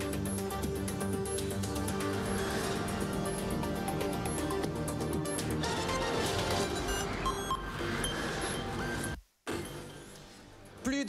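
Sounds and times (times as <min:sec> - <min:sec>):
electronic news theme jingle: 0:00.0 - 0:10.0.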